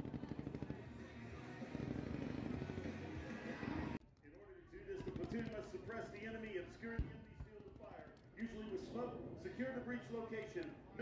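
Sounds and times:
rapid rifle and machine gun fire: 0:00.0 - 0:03.5, 0:04.9 - 0:06.0.

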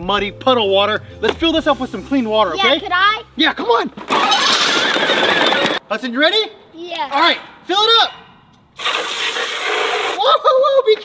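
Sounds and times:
hose nozzle spraying water: 0:08.8 - 0:10.2.

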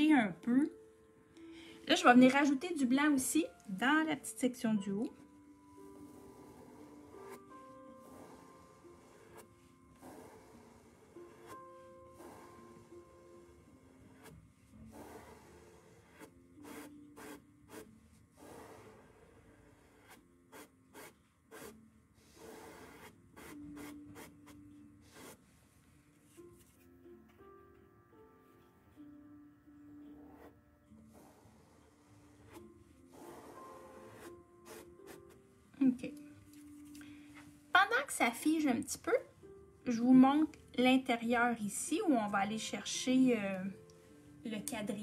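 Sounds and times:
soft background music: 0:00.0 - 0:45.0
paintbrush rubbing on fabric: 0:05.7 - 0:26.8, 0:31.1 - 0:35.4.

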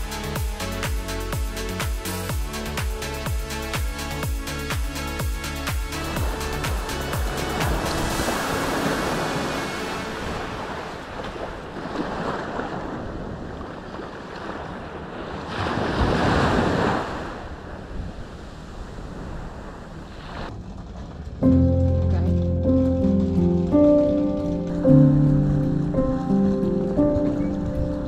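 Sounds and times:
small waves breaking on shore: 0:06.0 - 0:21.1
wind buffeting microphone: 0:06.0 - 0:28.0.

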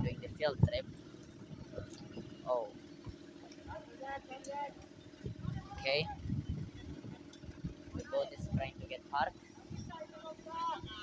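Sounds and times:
boat engine humming: 0:00.0 - 0:11.0
faint voices: 0:03.3 - 0:11.0.

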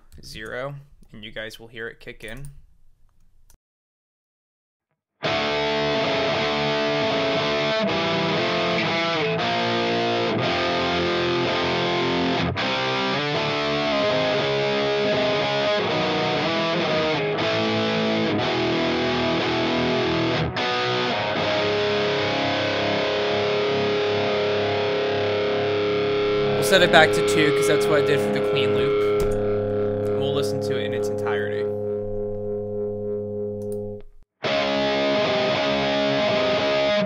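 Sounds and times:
distorted electric guitar riff: 0:05.2 - 0:37.0.

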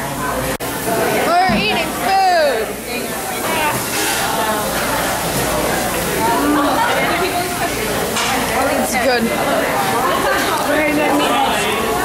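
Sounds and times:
indistinct talking and chatter: 0:00.0 - 0:12.0
noisy background din: 0:00.0 - 0:12.0.

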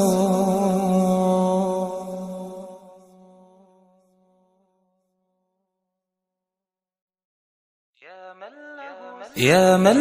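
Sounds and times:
person chanting unaccompanied: 0:00.0 - 0:03.6, 0:08.0 - 0:10.0.

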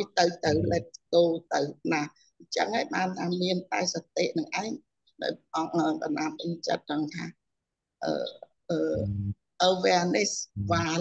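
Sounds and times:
person speaking: 0:00.0 - 0:01.5, 0:08.0 - 0:11.0
low drawn-out vocal sound: 0:00.5 - 0:00.8, 0:08.9 - 0:09.4, 0:10.6 - 0:11.0.

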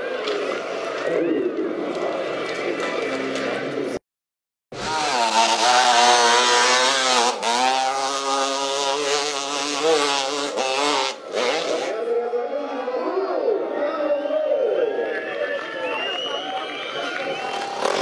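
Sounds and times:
wheel spinning in dirt: 0:04.8 - 0:11.6, 0:17.6 - 0:18.0
motorcycle engines revving: 0:04.8 - 0:12.0, 0:17.6 - 0:18.0.

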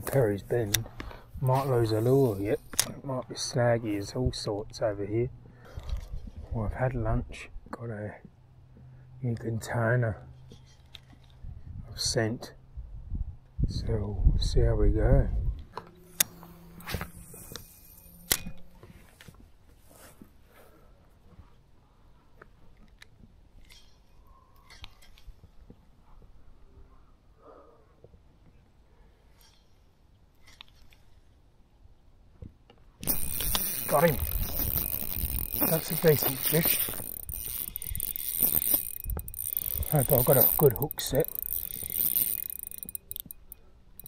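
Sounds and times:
fishing reel clicks: 0:00.0 - 0:03.0, 0:15.8 - 0:18.8, 0:33.0 - 0:44.0
faint ticks: 0:33.1 - 0:44.0.

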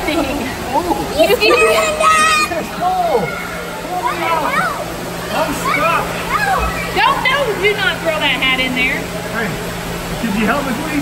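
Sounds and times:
steady low hum: 0:00.0 - 0:11.0
excited children's voices: 0:00.7 - 0:07.7.

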